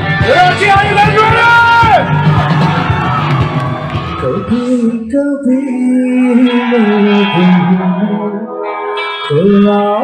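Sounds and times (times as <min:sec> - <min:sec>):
crowd cheering: 0:00.0 - 0:04.9
live rock band: 0:00.0 - 0:10.0
person singing: 0:04.0 - 0:10.0.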